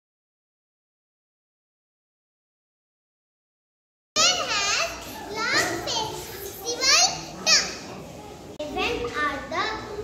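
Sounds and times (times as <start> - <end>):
boy speaking: 4.2 - 7.9, 8.6 - 10.0.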